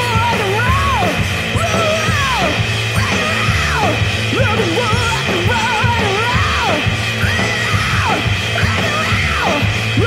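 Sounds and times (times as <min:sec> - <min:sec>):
electronic rock music: 0:00.0 - 0:10.0
singer yelling into microphone: 0:00.0 - 0:10.0.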